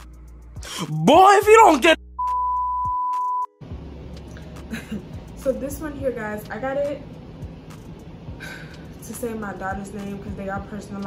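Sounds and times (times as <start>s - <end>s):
censor bleep: 2.2s - 3.6s.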